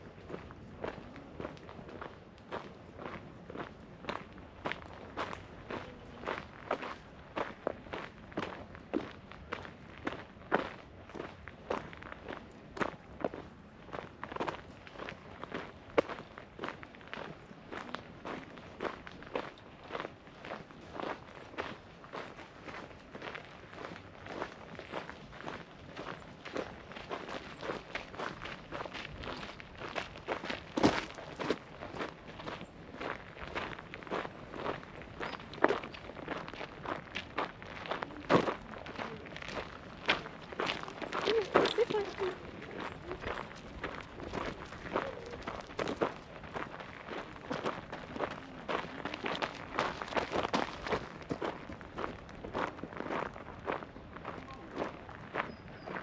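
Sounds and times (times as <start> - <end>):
footsteps walking: 26.5 - 55.0.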